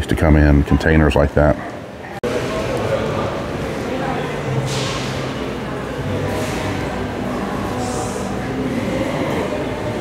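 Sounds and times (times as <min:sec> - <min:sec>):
low rumbling hall din: 0:01.6 - 0:10.0.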